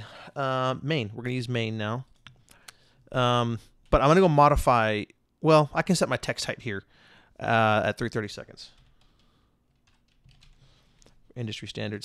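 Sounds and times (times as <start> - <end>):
faint keyboard typing: 1.8 - 4.2, 8.0 - 11.6.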